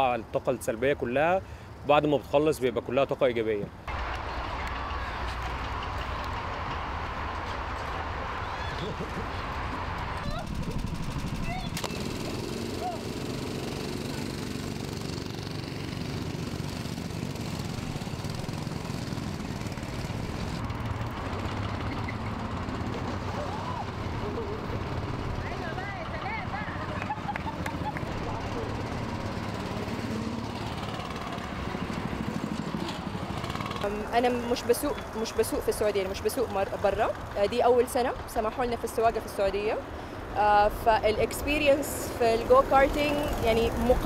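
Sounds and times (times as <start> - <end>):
go-kart engines running: 3.9 - 44.0.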